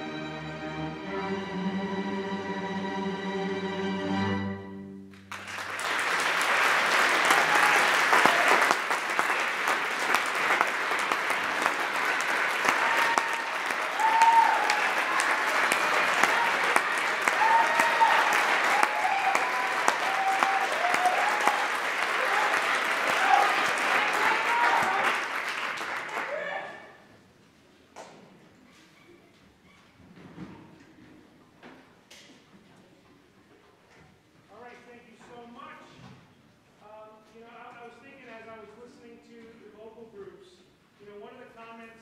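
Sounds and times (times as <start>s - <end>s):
audience applauding: 5.1s - 26.9s.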